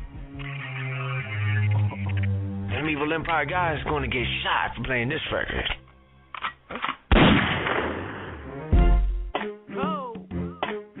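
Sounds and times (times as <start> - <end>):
loud gunshot sound effect: 7.1 - 8.4.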